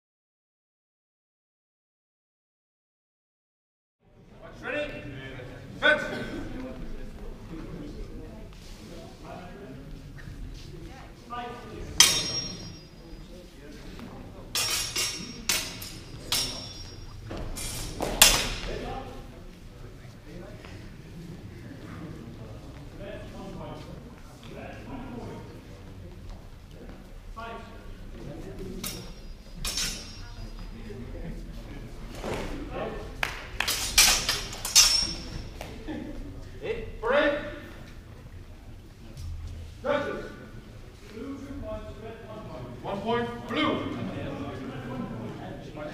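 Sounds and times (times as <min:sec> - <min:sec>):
fencing swords clashing: 0:12.0 - 0:13.1, 0:14.5 - 0:18.8, 0:28.7 - 0:30.6, 0:33.2 - 0:35.7.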